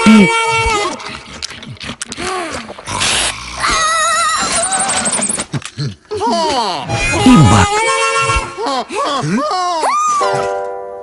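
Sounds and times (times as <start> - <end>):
warbling squeaky trill cry: 3.6 - 5.5.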